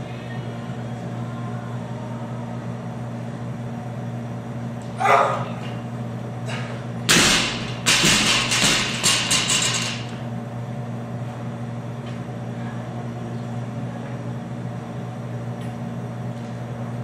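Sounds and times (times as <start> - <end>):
steady low hum: 0.0 - 17.0
barbell crashing and rattling: 7.1 - 10.2.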